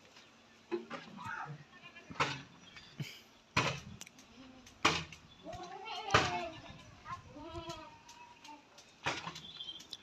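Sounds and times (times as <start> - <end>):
young farm animal bleating: 1.2 - 2.2, 5.5 - 8.4.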